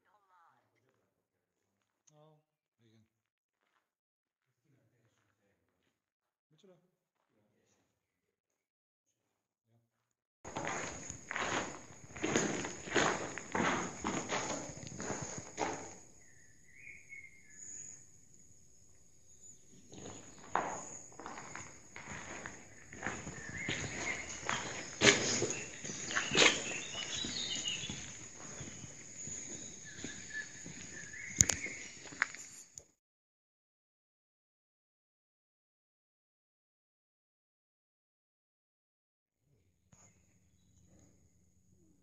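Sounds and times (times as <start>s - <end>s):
footsteps on stony floor: 10.5s - 16.2s, 19.7s - 32.7s.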